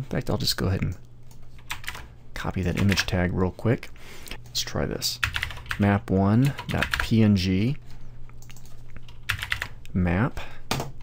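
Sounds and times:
computer keyboard typing: 1.3 - 3.1, 5.2 - 5.8, 6.5 - 7.1, 8.4 - 9.8.

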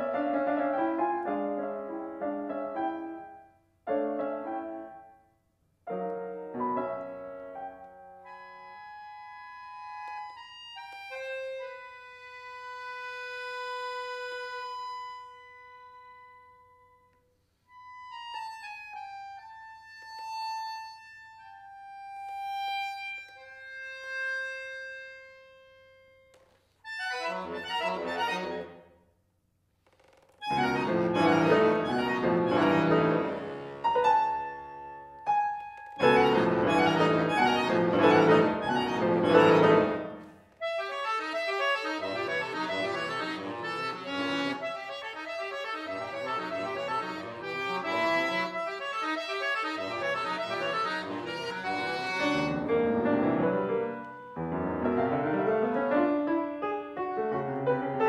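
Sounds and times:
piano: 0.0 - 25.7, 30.4 - 58.0
button accordion: 7.6 - 16.4, 17.7 - 28.8, 30.4 - 54.2.

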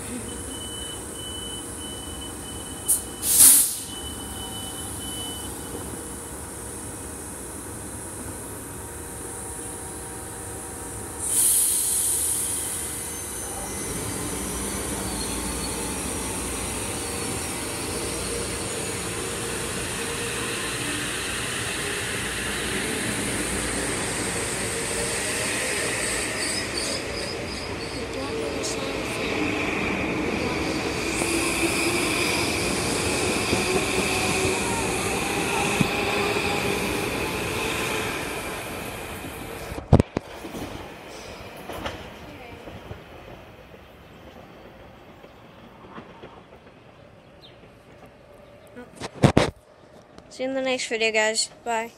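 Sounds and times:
high train motor whine: 0.0 - 49.2
train cars rolling past: 0.1 - 51.9
air brake hiss: 2.9 - 4.0, 11.2 - 13.6.

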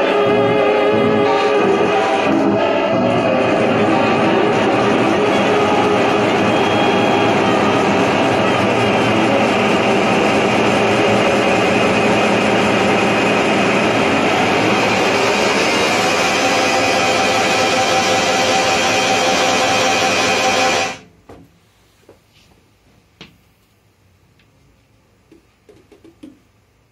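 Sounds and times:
held pitched tones: 0.0 - 21.0
noise music with saxophone and electronics: 0.0 - 21.0.

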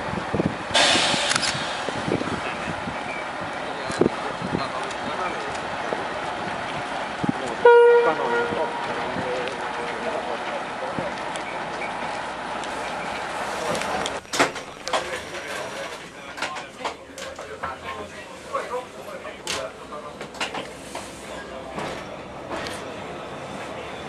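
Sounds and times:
diesel railcars rumbling past: 0.0 - 24.0
short horn toot: 7.6 - 8.9.

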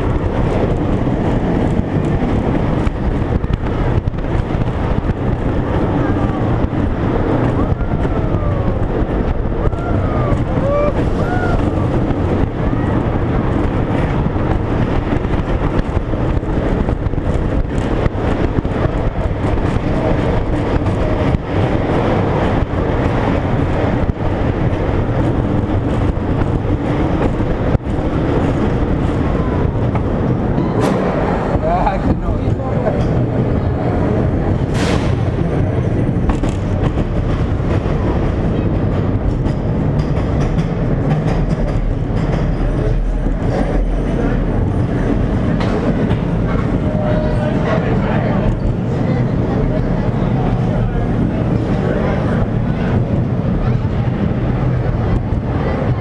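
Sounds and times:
roller coaster clattering: 0.0 - 56.0
roller coaster wheels rumbling on rails: 0.0 - 56.0.

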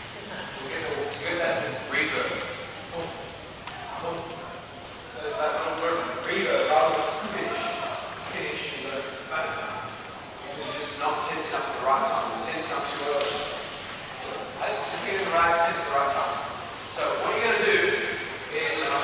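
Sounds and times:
many people talking in echoing hall: 0.0 - 19.0.

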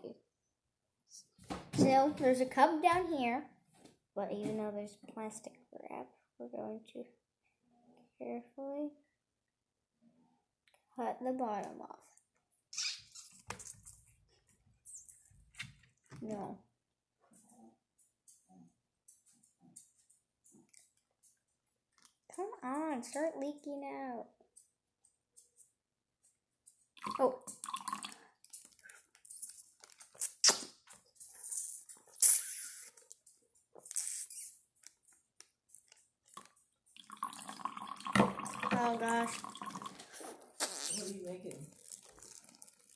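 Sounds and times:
juice slurped from plastic bag: 27.0 - 33.1, 33.8 - 34.6, 36.3 - 42.9
liquid dripping and splashing: 27.0 - 40.8, 41.5 - 42.9
plastic bag crinkling: 28.0 - 30.3, 38.9 - 42.9.

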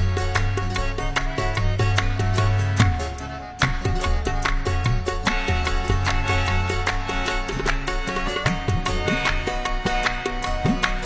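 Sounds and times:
harmonium notes: 0.0 - 11.0.

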